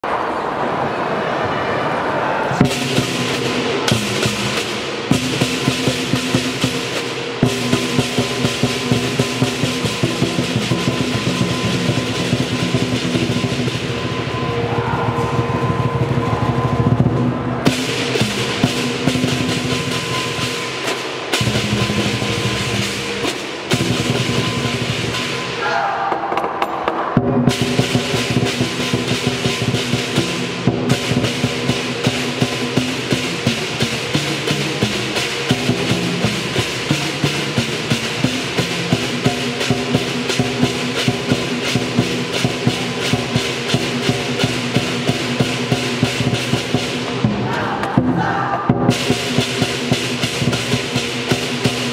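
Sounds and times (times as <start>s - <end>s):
gong: 2.6s - 25.6s
hand cymbals clashing: 2.6s - 25.6s
barrel drums beating: 2.6s - 51.9s.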